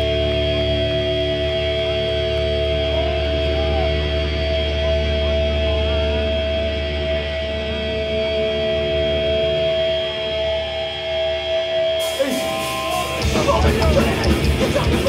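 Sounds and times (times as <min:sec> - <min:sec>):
electric guitars ringing: 0:00.0 - 0:15.0
thrash metal band playing: 0:00.0 - 0:15.0.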